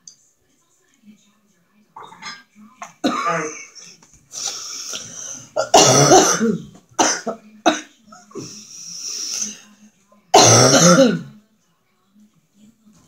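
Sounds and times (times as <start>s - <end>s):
woman coughing: 2.0s - 4.0s, 5.6s - 8.5s, 10.3s - 11.3s.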